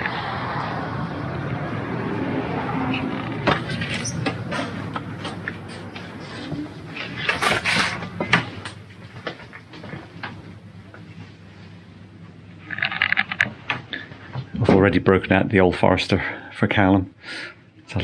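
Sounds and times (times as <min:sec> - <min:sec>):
street noise: 0:00.0 - 0:14.6
footsteps: 0:02.9 - 0:11.7
handling clicks and knocks: 0:03.0 - 0:10.4.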